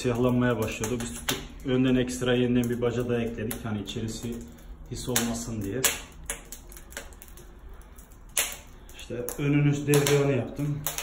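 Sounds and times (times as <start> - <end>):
faint snaps of fire: 0.0 - 11.0
wood fire crackling: 0.0 - 11.0.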